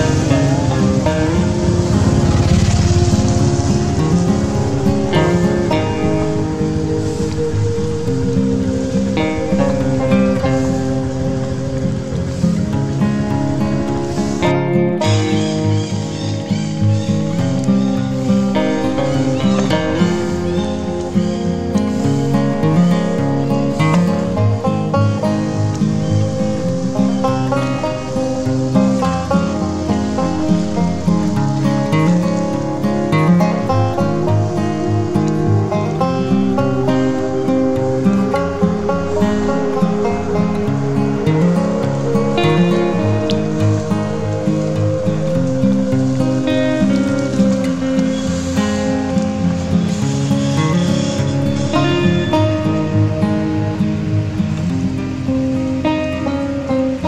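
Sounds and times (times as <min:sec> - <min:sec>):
plucked strings background music: 0:00.0 - 0:57.0.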